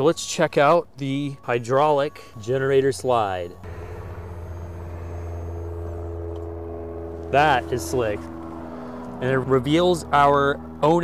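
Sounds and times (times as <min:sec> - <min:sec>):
higher steady tones: 0:03.6 - 0:09.2
hydraulic pump humming: 0:03.6 - 0:09.2.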